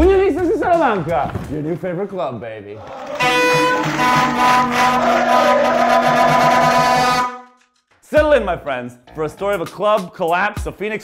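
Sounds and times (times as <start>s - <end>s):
music sting: 2.8s - 7.4s
plastic horn buzzy note: 2.8s - 7.7s.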